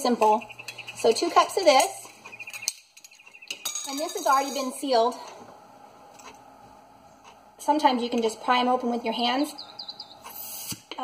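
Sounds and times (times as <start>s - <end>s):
bird trilling: 0.3s - 1.2s, 2.2s - 4.0s, 9.5s - 10.7s.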